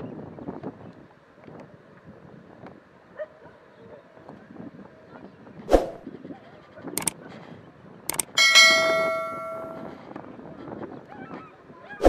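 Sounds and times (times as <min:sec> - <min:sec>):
bell chime: 0:08.2 - 0:10.0.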